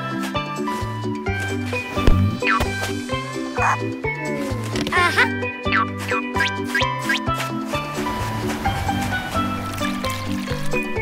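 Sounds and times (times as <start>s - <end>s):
bouncy cartoon music: 0.0s - 11.0s
thump: 2.0s - 2.8s.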